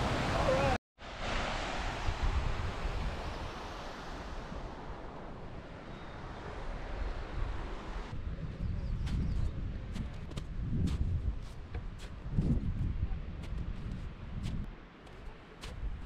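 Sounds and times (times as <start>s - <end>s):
wind buffeting microphone: 2.0s - 14.8s
footsteps on snow: 8.9s - 16.0s.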